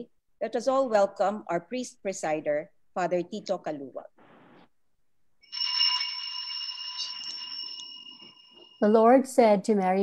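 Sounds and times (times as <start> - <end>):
bell ringing: 5.4 - 9.2.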